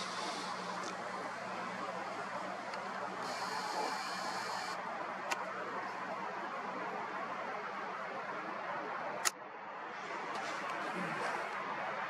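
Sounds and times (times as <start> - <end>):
camera zoom motor whirring: 0.0 - 1.0, 3.2 - 4.8
faint hum: 0.0 - 7.6
outdoor background hiss: 0.0 - 12.0.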